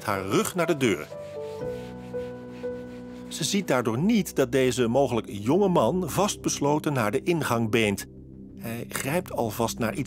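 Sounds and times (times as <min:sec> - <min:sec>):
background music: 0:00.0 - 0:10.0
cloth wiping counter: 0:00.6 - 0:03.8.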